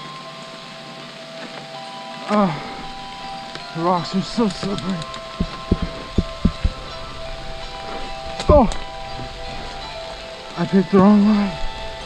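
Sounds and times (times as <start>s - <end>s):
bike wheels thumping on rocks: 4.2s - 8.8s.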